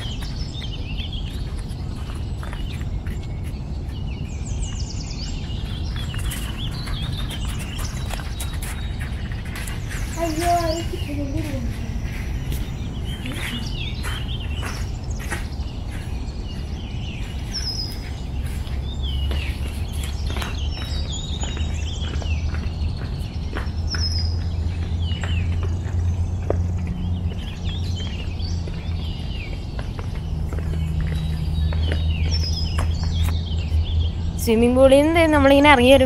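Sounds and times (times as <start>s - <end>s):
birds chirping: 0.0s - 36.0s.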